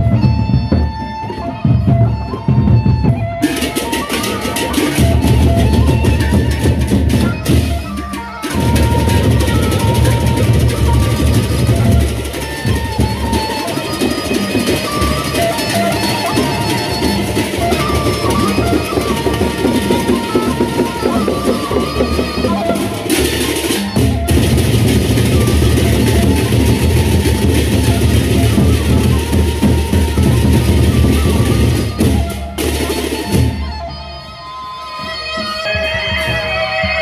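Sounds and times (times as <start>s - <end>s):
large barrel drums beating: 0.0s - 34.0s.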